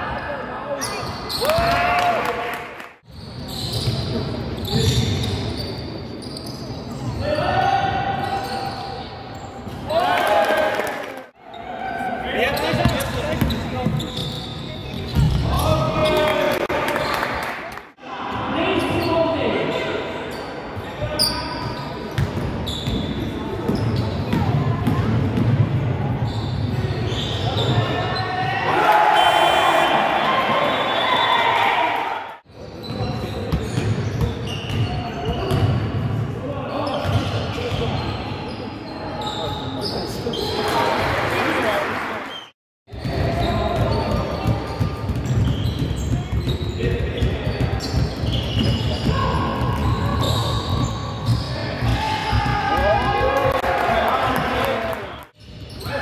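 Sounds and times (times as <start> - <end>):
basketball bouncing on court: 12.7 - 15.5, 22.1 - 25.9, 42.9 - 53.0
players shouting: 28.2 - 32.3, 51.7 - 55.0.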